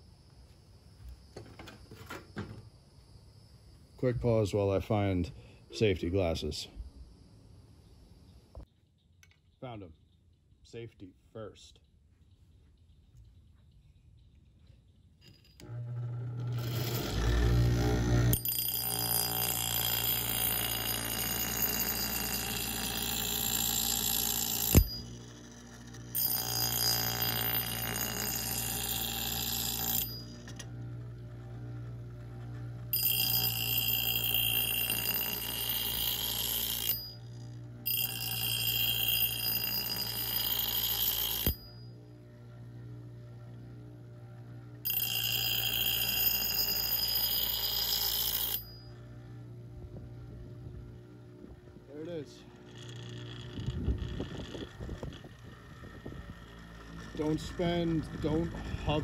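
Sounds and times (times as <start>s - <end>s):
high-pitched ringing grind: 15.2s - 43.9s, 44.7s - 59.0s
bench grinder motor hum: 15.6s - 59.0s.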